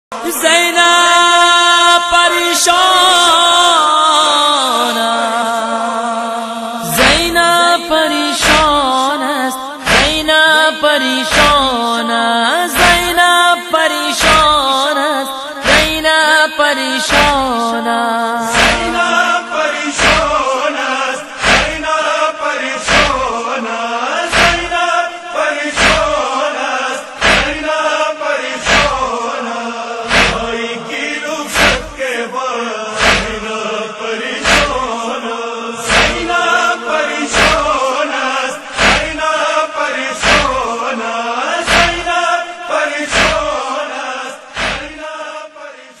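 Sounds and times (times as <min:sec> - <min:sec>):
man chanting a lament: 0:00.1 - 0:46.0
chest-beating strikes: 0:18.5 - 0:19.4, 0:20.0 - 0:20.4, 0:21.4 - 0:21.8, 0:22.9 - 0:23.2, 0:24.3 - 0:24.7, 0:25.8 - 0:26.2, 0:27.2 - 0:27.6, 0:28.6 - 0:29.0, 0:30.1 - 0:30.6, 0:31.5 - 0:32.0, 0:33.0 - 0:33.4, 0:34.4 - 0:34.8, 0:35.9 - 0:36.4, 0:38.8 - 0:39.1
deep drum thump: 0:27.2 - 0:27.6, 0:30.1 - 0:30.5.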